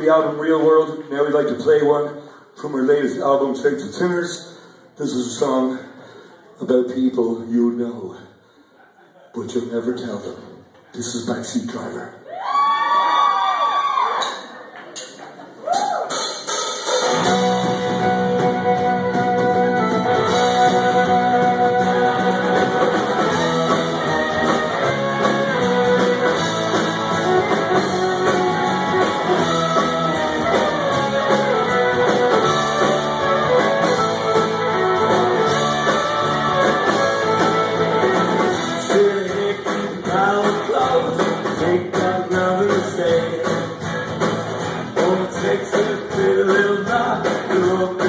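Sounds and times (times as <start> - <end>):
live rock band playing: 16.0 - 48.0.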